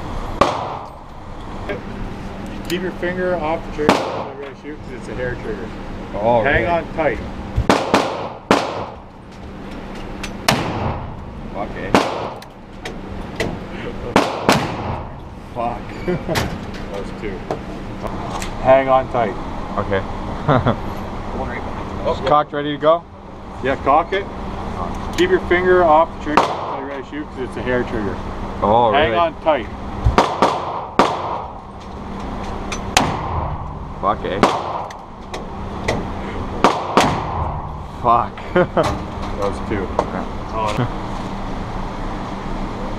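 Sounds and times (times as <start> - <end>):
gunshots echoing indoors: 7.7 - 9.0, 14.2 - 15.0, 30.2 - 31.6, 34.4 - 34.9.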